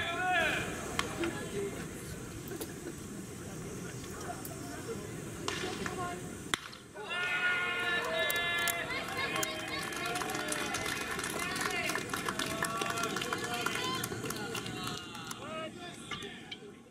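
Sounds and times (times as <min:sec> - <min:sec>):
voices shouting: 0:00.0 - 0:00.9, 0:06.9 - 0:16.6
sharp claps: 0:08.0 - 0:15.4.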